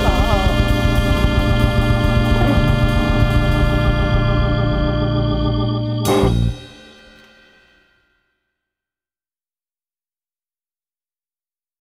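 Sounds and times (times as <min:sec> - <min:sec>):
blues band final chord: 0:00.0 - 0:07.5
cymbal wash: 0:00.0 - 0:08.0.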